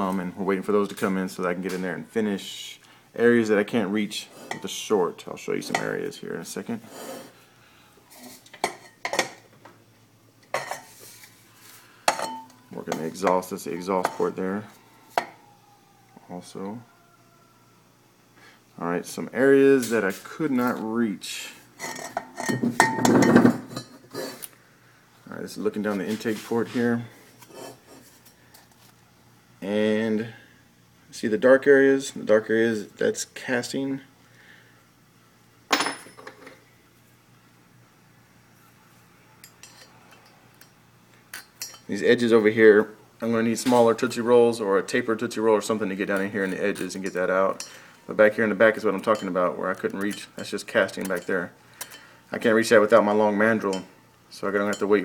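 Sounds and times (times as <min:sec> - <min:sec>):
metal being handled: 0:12.0 - 0:14.4, 0:21.8 - 0:24.5.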